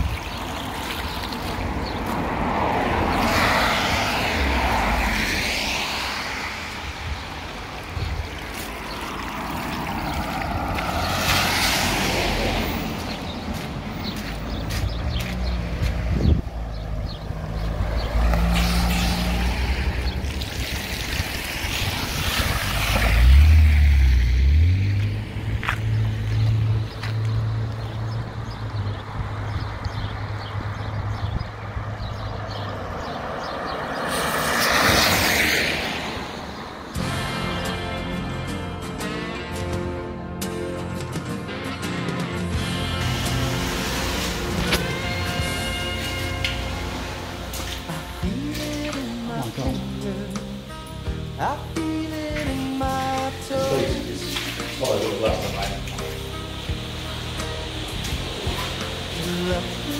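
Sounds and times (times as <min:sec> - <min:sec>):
tyres hissing through water: 0:00.0 - 0:13.6, 0:17.3 - 0:26.6, 0:33.2 - 0:37.5, 0:42.8 - 0:59.9.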